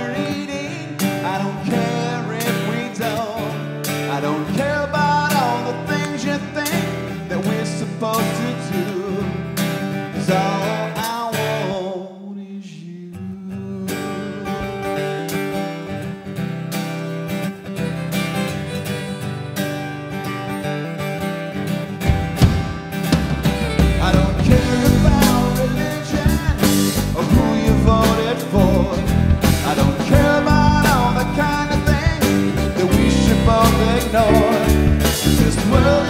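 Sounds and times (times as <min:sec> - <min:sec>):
man singing: 0:00.0 - 0:09.4, 0:10.0 - 0:16.0, 0:23.6 - 0:36.0
strummed acoustic guitar: 0:00.0 - 0:36.0.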